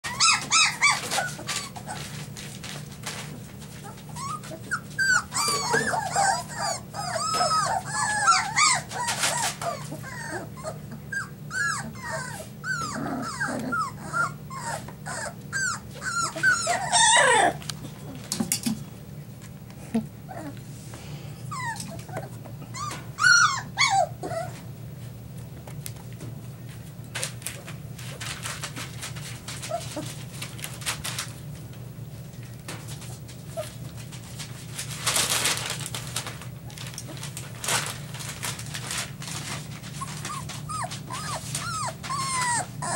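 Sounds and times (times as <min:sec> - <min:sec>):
puppies whining and squealing: 0:00.0 - 0:18.4, 0:20.2 - 0:20.6, 0:21.4 - 0:25.0, 0:28.4 - 0:30.5, 0:39.3 - 0:42.9.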